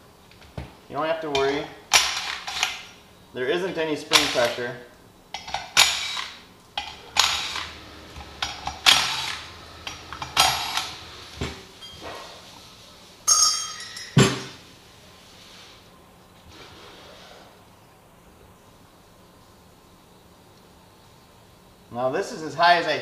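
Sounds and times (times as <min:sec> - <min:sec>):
metal parts clinking on workbench: 0:13.3 - 0:14.6.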